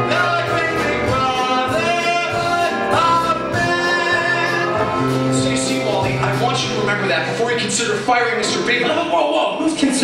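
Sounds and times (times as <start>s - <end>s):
cast singing show tune: 0.0s - 6.8s
instrumental accompaniment: 0.0s - 10.0s.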